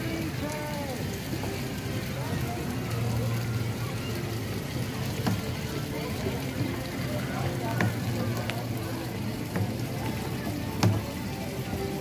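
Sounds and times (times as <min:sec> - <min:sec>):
distant voices chattering: 0:00.0 - 0:12.0.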